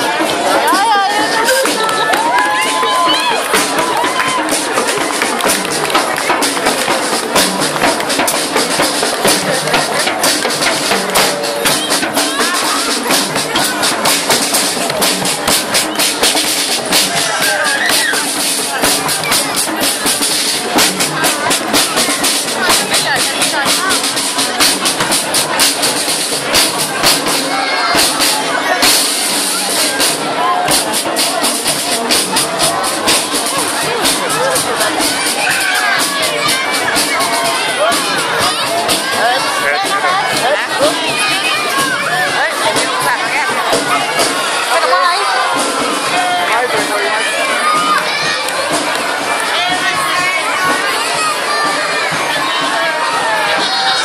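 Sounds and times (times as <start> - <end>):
crowd voices: 0.0 - 54.0
marching band playing: 0.0 - 54.0.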